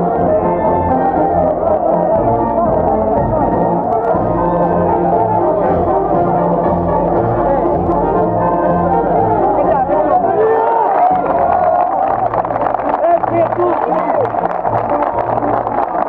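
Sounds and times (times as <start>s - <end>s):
brass band playing: 0.0s - 16.0s
crowd voices: 0.0s - 16.0s.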